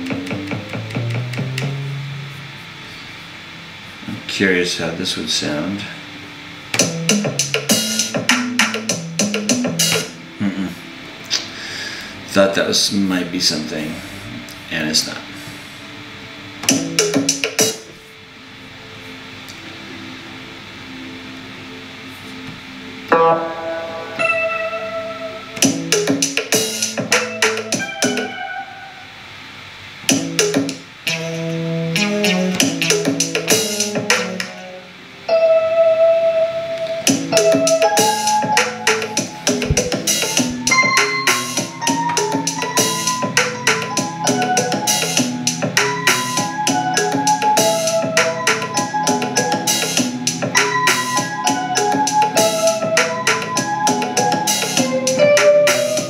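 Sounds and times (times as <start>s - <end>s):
drum beat: 6.8s - 10.2s, 16.6s - 17.9s, 25.6s - 28.2s, 30.1s - 30.8s, 37.1s - 46.5s
synthesizer keyboard part: 13.5s - 29.2s, 30.1s - 56.0s.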